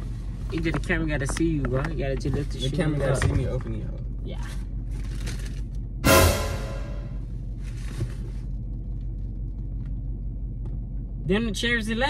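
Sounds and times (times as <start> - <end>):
low rumble inside car: 0.0 - 6.0, 7.1 - 12.0
dramatic boom music sting: 6.0 - 7.2.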